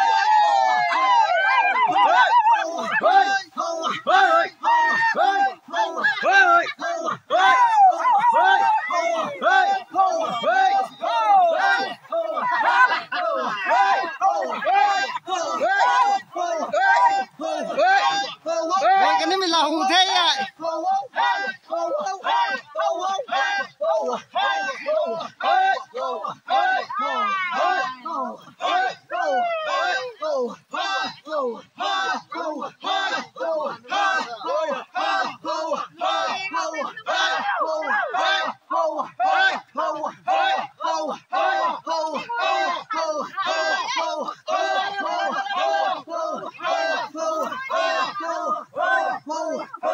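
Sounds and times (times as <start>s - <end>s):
group of voices chanting: 0.0s - 49.9s.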